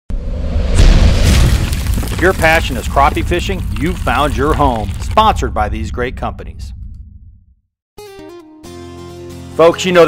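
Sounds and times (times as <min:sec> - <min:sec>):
deep cinematic boom: 0:00.1 - 0:07.7.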